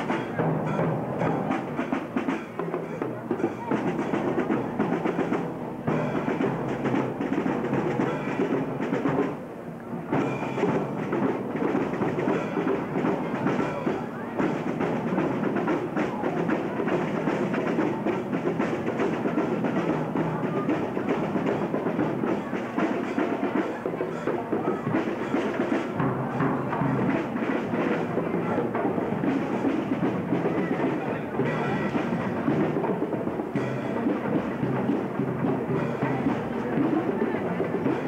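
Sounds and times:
marching drum line cadence: 0.0 - 38.0.

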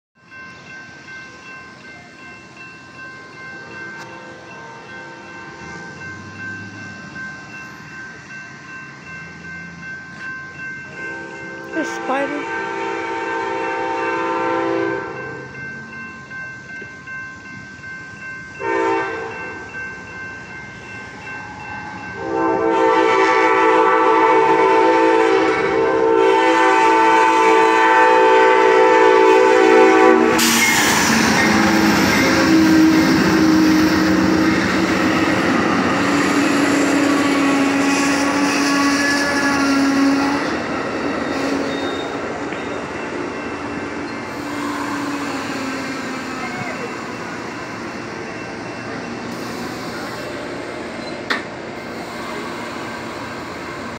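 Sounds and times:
train cars rumbling past: 0.2 - 53.9
train horn blasts: 11.0 - 15.4, 18.6 - 19.6, 22.2 - 40.6, 41.2 - 42.2, 44.3 - 46.0.

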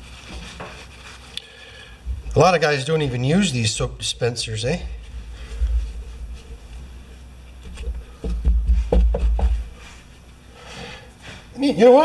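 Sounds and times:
pump bumping on metal workbench: 7.8 - 9.7.

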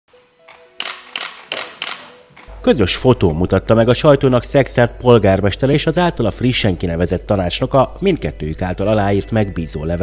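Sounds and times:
camera shutters clicking: 0.5 - 2.5.

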